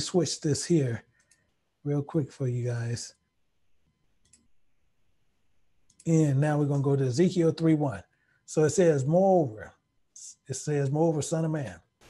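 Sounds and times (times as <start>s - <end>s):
computer mouse clicking: 1.1s - 1.5s, 4.2s - 4.5s, 5.8s - 6.1s.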